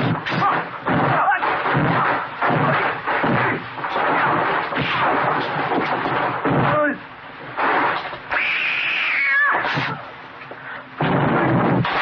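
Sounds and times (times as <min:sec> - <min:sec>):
cat yowling: 0:08.3 - 0:10.0.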